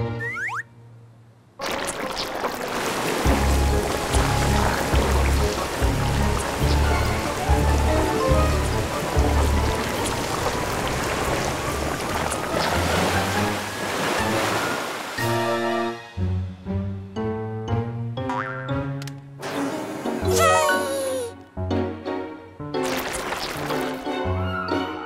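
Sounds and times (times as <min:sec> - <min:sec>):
rushing water spray: 0:01.6 - 0:15.2.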